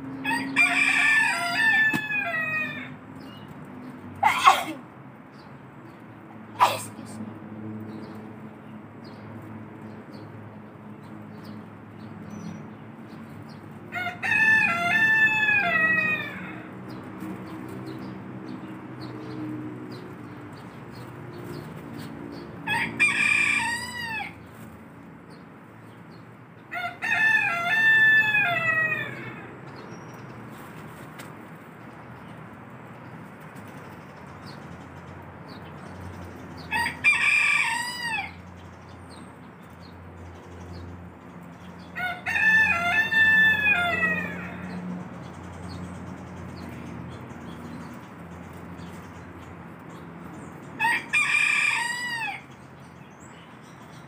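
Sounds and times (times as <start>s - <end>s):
rooster crowing: 0.2s - 3.0s, 13.9s - 16.8s, 22.6s - 24.4s, 26.7s - 29.5s, 36.6s - 38.6s, 41.9s - 44.8s, 50.8s - 52.6s.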